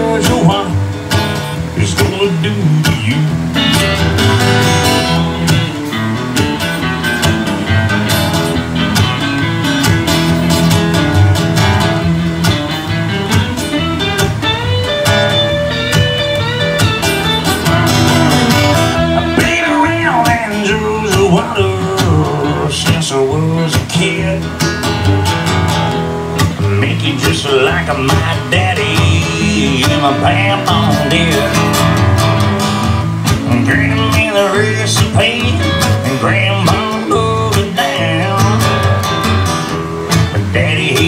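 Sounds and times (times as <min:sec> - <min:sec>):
acoustic guitar playing: 0:00.0 - 0:41.0.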